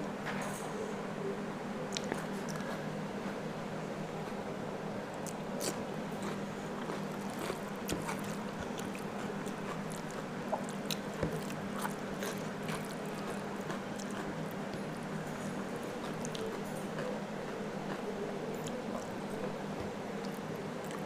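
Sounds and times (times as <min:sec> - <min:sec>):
steady low hum: 0:00.0 - 0:21.0
fingers mixing rice on a plate: 0:05.2 - 0:14.8
biting and chewing cucumber: 0:05.2 - 0:21.0.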